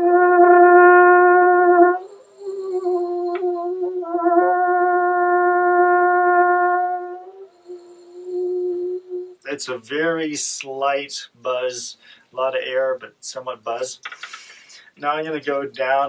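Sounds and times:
french horn notes: 0:00.0 - 0:09.5.

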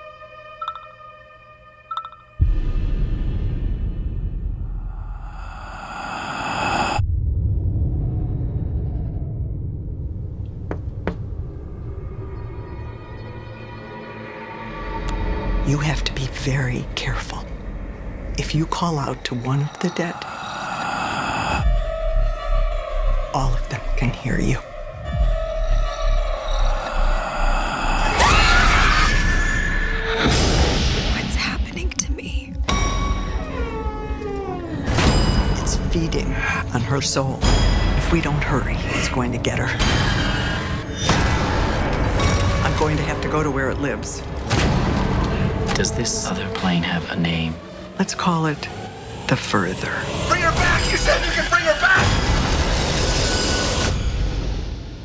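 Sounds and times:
low rumbling drone: 0:02.4 - 0:10.5, 0:11.3 - 0:28.5.

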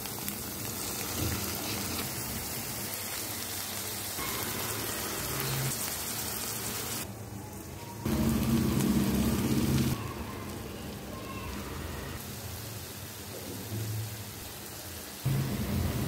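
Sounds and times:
potatoes sizzling in a pan: 0:00.0 - 0:07.1, 0:08.1 - 0:16.0.

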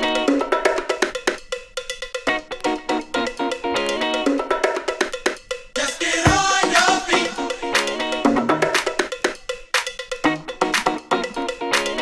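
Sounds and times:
funky percussive dance track: 0:00.0 - 0:12.0.

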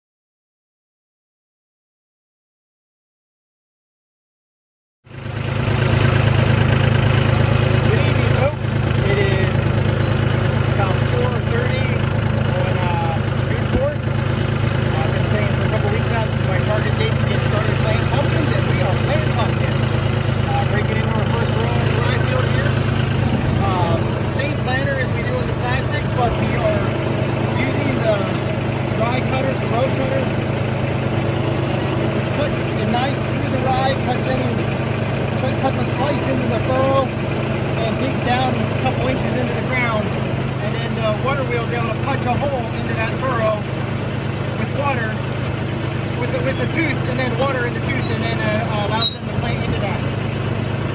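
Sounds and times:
tractor engine running: 0:05.1 - 0:50.9.

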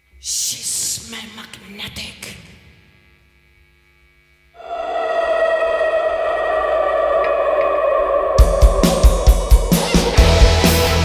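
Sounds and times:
amplified band chord with effects: 0:04.6 - 0:11.0.

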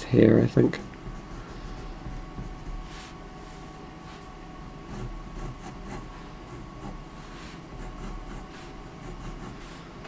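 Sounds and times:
pen scratching on paper: 0:00.8 - 0:03.2, 0:04.9 - 0:09.9.

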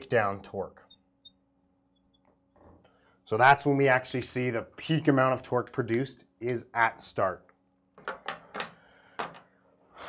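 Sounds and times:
faint steady hum: 0:00.0 - 0:10.0
marker squeaking on glass: 0:02.0 - 0:02.8.

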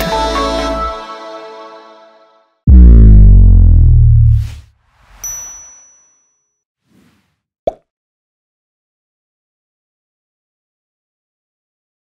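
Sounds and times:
deep bass hit: 0:02.7 - 0:04.6
whoosh: 0:02.7 - 0:05.3
bright ding: 0:05.2 - 0:06.5.

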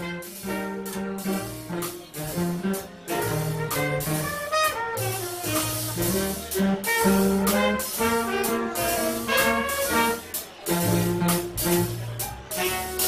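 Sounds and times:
jazz band playing: 0:00.0 - 0:13.0
saxophone and brass melody: 0:00.0 - 0:13.0
walking bass line: 0:00.0 - 0:13.0.

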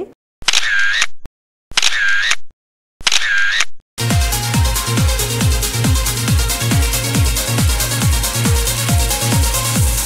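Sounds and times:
electronic dance music: 0:04.0 - 0:10.0.

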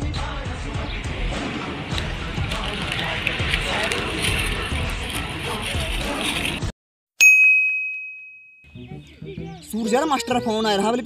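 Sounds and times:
outdoor background noise: 0:00.3 - 0:06.7
bright bell-like ding: 0:07.2 - 0:08.8.

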